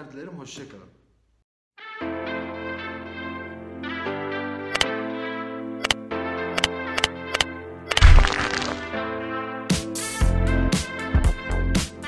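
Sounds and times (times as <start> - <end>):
music: 1.8 - 12.0
sharp clicks: 6.6 - 8.6.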